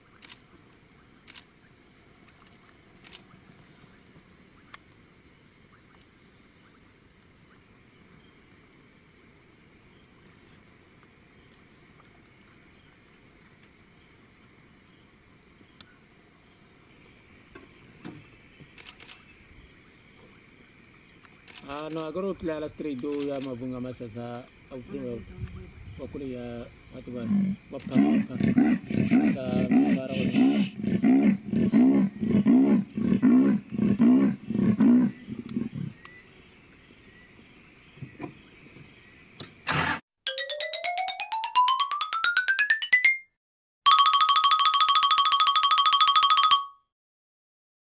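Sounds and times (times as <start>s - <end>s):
crickets and insects trilling: 0.0s - 40.0s
camera shutter clicks: 3.0s - 3.3s, 18.8s - 19.2s, 23.0s - 23.6s
leopard sawing roar: 27.2s - 36.0s, 39.6s - 40.0s.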